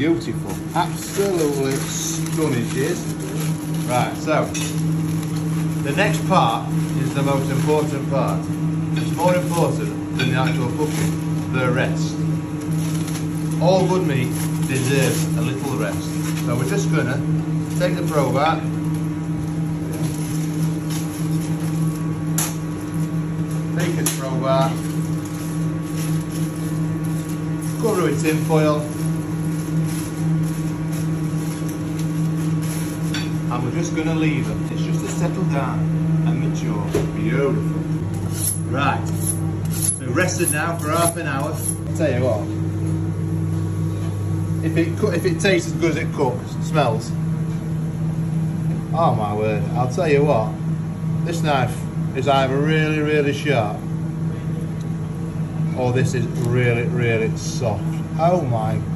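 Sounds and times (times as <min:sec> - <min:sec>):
kitchen extractor fan humming: 0:00.0 - 0:58.9
aluminium foil crackling: 0:00.4 - 0:35.6.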